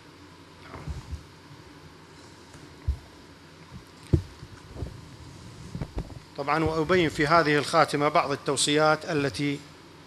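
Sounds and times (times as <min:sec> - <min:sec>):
low thumps on table: 0:03.8 - 0:05.0.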